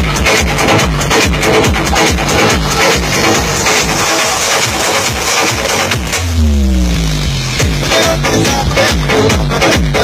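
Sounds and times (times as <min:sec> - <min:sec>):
electronic dance music: 0:00.0 - 0:10.0
deep falling synth tone: 0:05.9 - 0:07.8.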